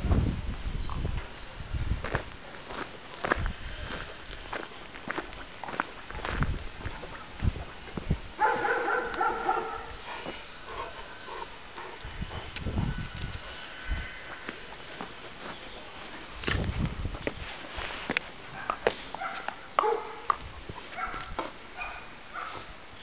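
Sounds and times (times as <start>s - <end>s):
scuffs and low thumps: 0.0s - 8.4s, 12.0s - 19.2s.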